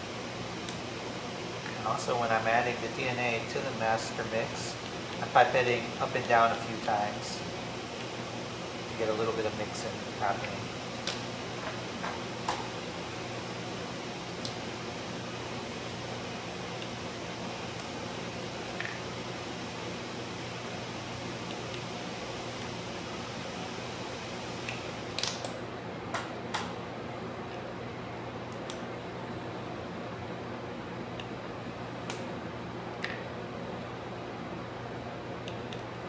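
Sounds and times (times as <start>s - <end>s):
low room hum: 0.0s - 36.0s.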